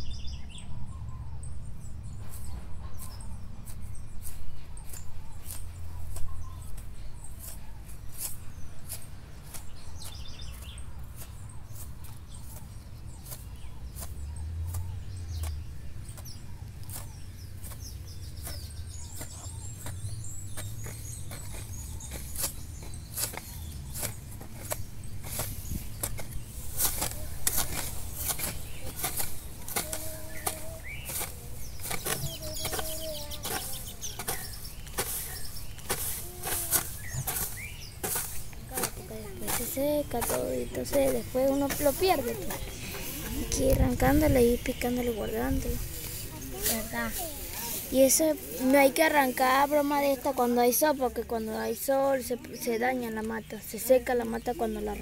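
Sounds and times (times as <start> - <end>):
birds chirping: 0.0 - 55.0
hoe chopping into soil: 12.0 - 44.3.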